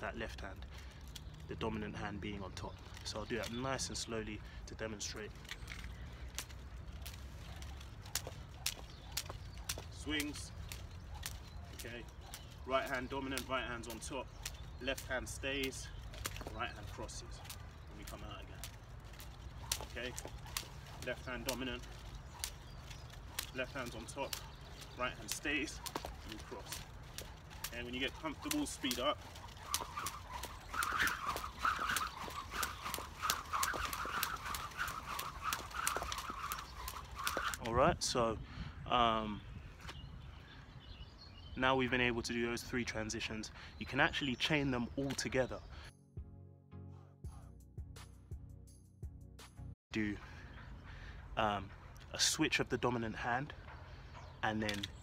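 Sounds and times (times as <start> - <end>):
skipping rope slapping concrete: 5.0 - 37.7.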